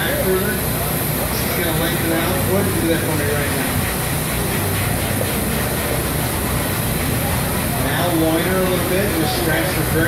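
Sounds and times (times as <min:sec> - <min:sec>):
low rumble and hiss: 0:00.0 - 0:10.0.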